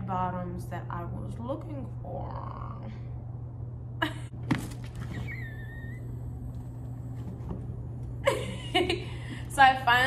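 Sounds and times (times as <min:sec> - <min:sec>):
steady low hum: 0:00.0 - 0:10.0
woman squealing: 0:05.1 - 0:06.4.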